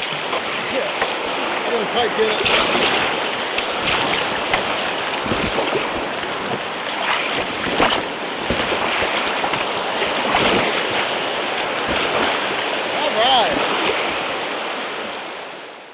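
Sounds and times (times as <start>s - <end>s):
whitewater rushing: 0.0s - 15.6s
water splashing against hull: 0.0s - 15.9s.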